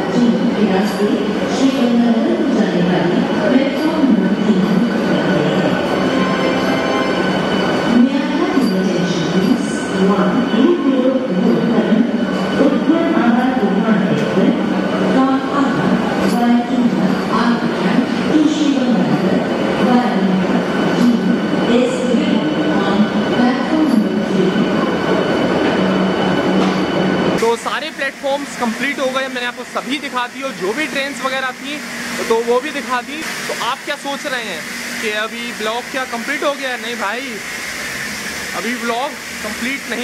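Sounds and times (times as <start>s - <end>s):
electric train rolling: 0.0s - 40.0s.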